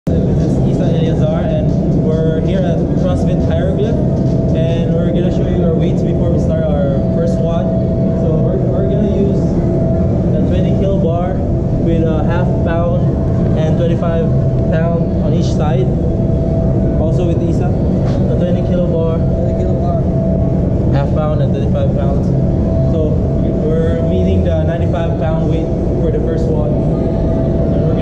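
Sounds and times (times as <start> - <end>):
loud low rumble: 0.0 - 28.0
thin steady hum: 0.0 - 28.0
voices talking: 0.1 - 28.0.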